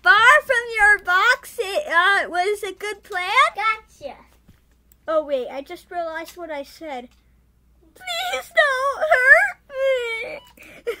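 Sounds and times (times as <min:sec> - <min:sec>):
boy wailing: 0:08.0 - 0:11.0.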